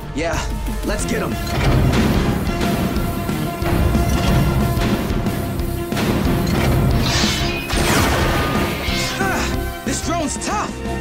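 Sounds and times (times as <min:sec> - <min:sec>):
action score music: 0:00.0 - 0:11.0
robot crash sound effects: 0:06.0 - 0:09.2.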